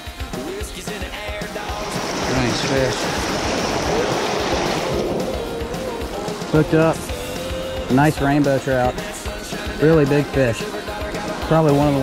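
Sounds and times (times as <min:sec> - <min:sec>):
water rushing over rocks: 0:01.6 - 0:12.0.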